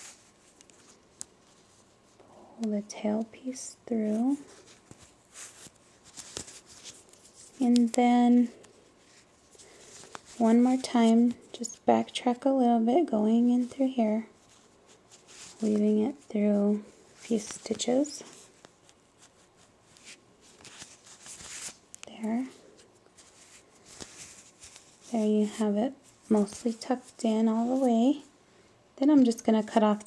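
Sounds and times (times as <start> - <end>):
yarn rustling: 3.0 - 11.7, 13.3 - 28.2.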